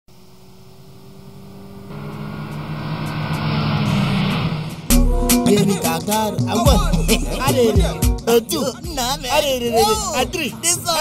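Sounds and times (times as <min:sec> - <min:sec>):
car engine running: 0:00.1 - 0:08.2
road noise: 0:00.1 - 0:11.0.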